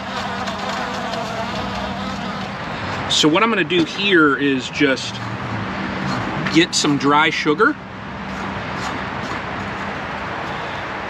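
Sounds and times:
honey bees buzzing: 0.0 - 3.1.

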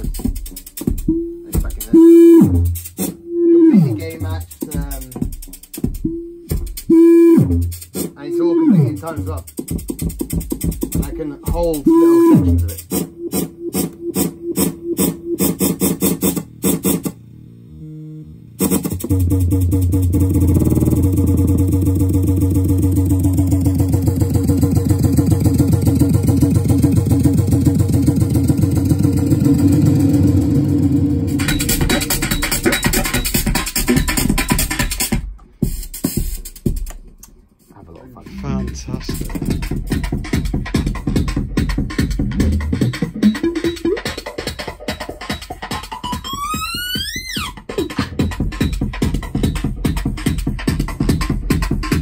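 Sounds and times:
bass-heavy electronic music loop: 0.0 - 52.0.

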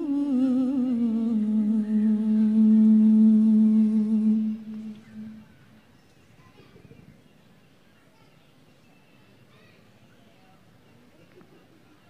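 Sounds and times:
woman reciting melodically: 0.0 - 5.5.

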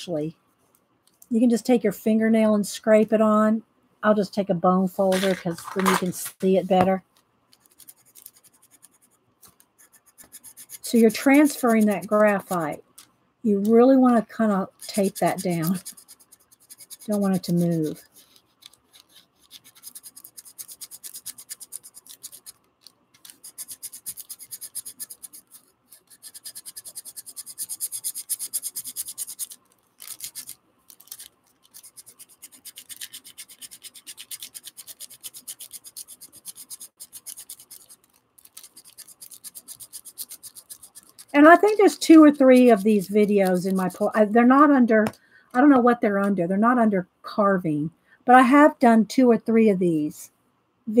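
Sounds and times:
bone folder rubbing on paper: 7.5 - 13.1, 14.0 - 44.1.

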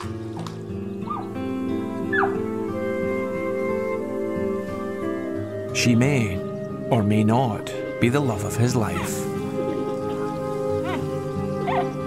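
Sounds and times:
background music with held notes: 0.0 - 12.0.

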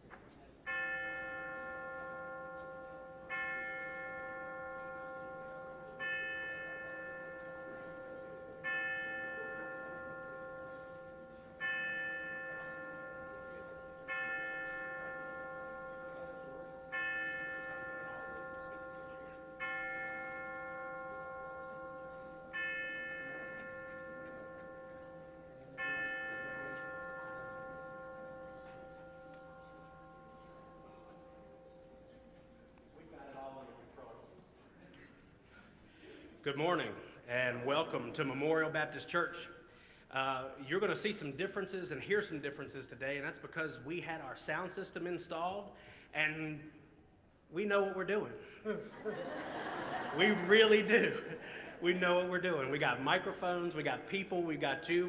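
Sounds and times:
bell struck on one pitch: 0.7 - 33.8.

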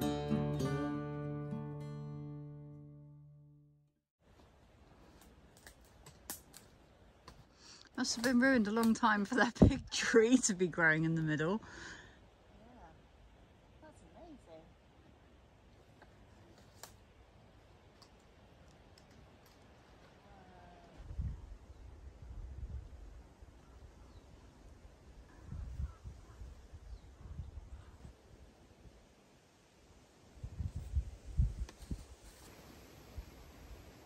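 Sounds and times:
acoustic guitar music: 0.0 - 3.7
faint outdoor ambience: 4.2 - 34.0.

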